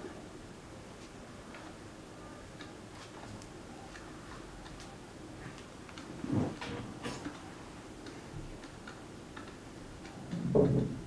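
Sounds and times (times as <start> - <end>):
low room noise: 0.0 - 11.0
faint clicks: 7.2 - 10.8.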